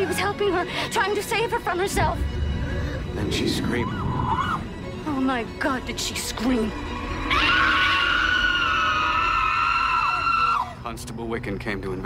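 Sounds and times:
woman screaming: 0:07.2 - 0:10.8.

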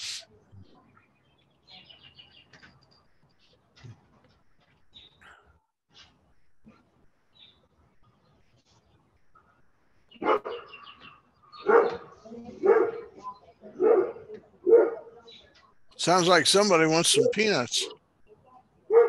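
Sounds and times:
dog barking outside: 0:10.2 - 0:15.3.

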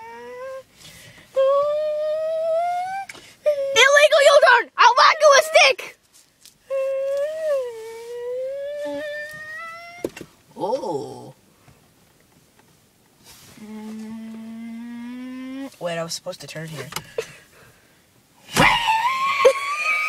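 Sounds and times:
boy humming: 0:00.0 - 0:00.7, 0:01.3 - 0:04.0, 0:06.7 - 0:11.3, 0:13.5 - 0:15.8.

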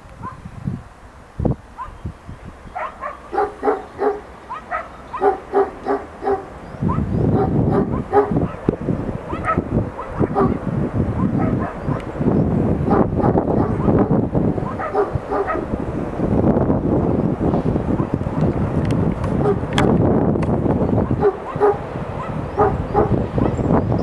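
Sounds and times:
low rumbling noise: 0:00.0 - 0:24.0.

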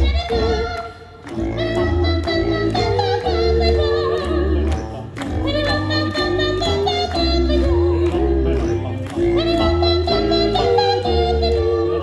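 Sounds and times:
young voices singing a cappella: 0:00.0 - 0:12.0.

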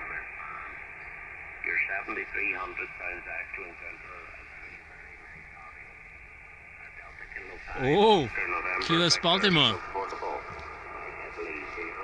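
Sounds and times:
radio band noise hiss: 0:00.0 - 0:12.0
faint distant voice on radio: 0:01.6 - 0:06.1, 0:06.7 - 0:12.0.

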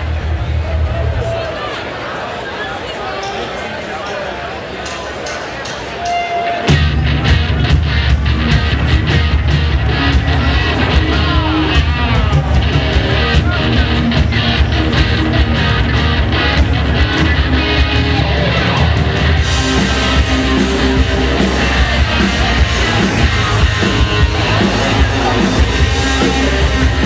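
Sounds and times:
rock band playing loudly: 0:05.6 - 0:27.0.

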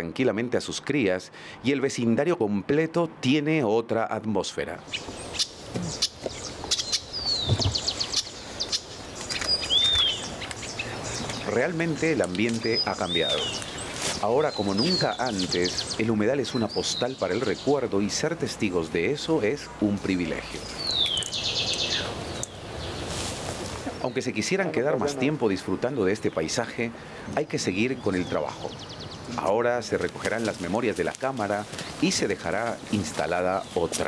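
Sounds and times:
outdoor background noise: 0:00.0 - 0:34.0
birds chirping: 0:04.8 - 0:34.0
fast bird trill: 0:04.9 - 0:17.7.

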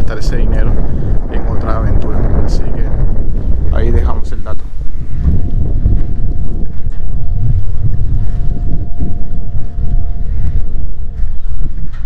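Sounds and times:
wind buffeting the microphone: 0:00.0 - 0:12.0.

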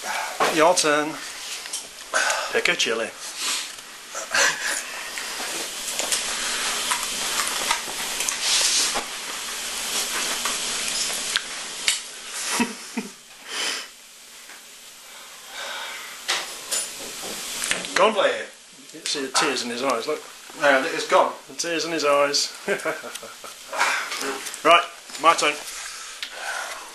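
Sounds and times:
man breathing hard and hissing: 0:00.0 - 0:00.5, 0:01.2 - 0:02.6, 0:03.2 - 0:05.6, 0:12.2 - 0:14.0, 0:15.0 - 0:16.3, 0:23.7 - 0:24.4, 0:25.7 - 0:26.9.

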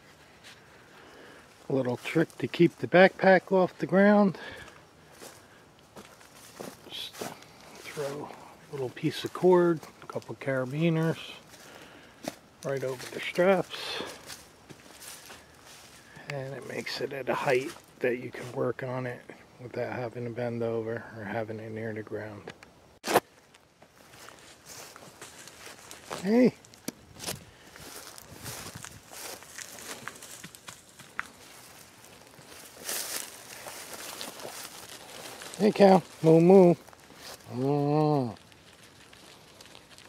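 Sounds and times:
footsteps on dry leaves: 0:00.0 - 0:03.8, 0:04.4 - 0:18.6, 0:23.0 - 0:40.0.

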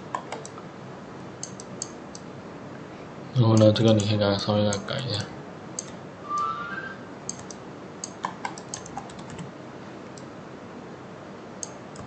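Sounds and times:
keyboard and mouse clicking: 0:00.0 - 0:00.6, 0:01.4 - 0:02.3, 0:03.6 - 0:04.9, 0:05.8 - 0:06.0, 0:07.3 - 0:09.5, 0:11.6 - 0:12.0.

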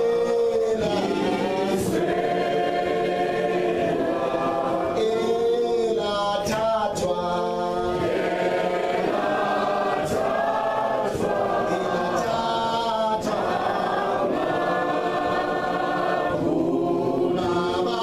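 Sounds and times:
group singing unaccompanied: 0:00.0 - 0:18.0.

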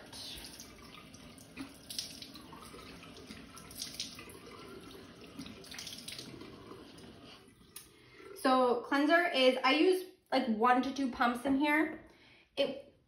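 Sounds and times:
water splashes: 0:00.0 - 0:08.4
tap running into a sink: 0:00.1 - 0:07.9.

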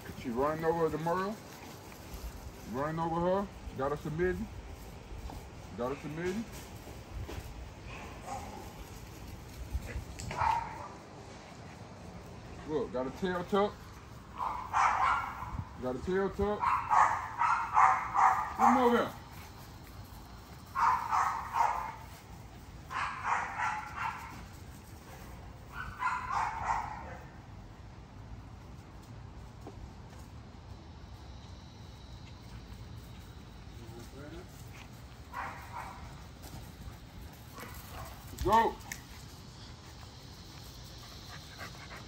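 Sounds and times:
puppies scuffling on grass: 0:00.0 - 0:27.3, 0:28.4 - 0:42.0
dogs barking and yelping: 0:07.9 - 0:08.9, 0:10.2 - 0:11.0, 0:14.3 - 0:15.7, 0:16.6 - 0:19.0, 0:20.7 - 0:22.1, 0:22.8 - 0:24.5, 0:25.1 - 0:27.4, 0:35.3 - 0:36.2
puppies panting: 0:36.7 - 0:42.0.

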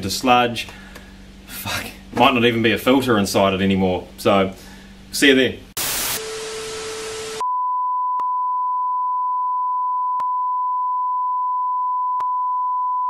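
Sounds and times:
television static hiss: 0:05.8 - 0:07.4
steady test tone beep: 0:06.3 - 0:13.0.

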